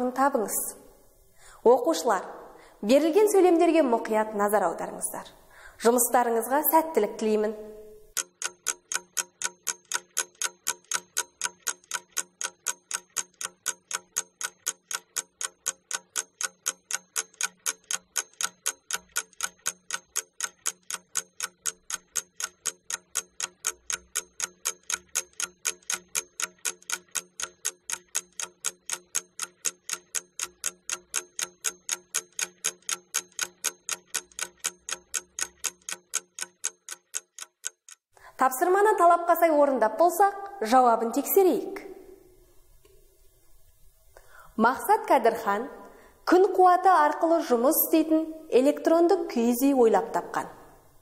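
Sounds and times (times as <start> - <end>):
clock ticking: 8.0 - 38.1.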